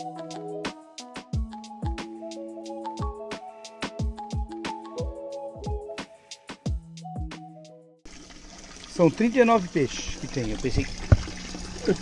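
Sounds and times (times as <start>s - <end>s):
background music with a beat: 0.0s - 8.0s
water pouring into a fish tank: 8.1s - 12.0s.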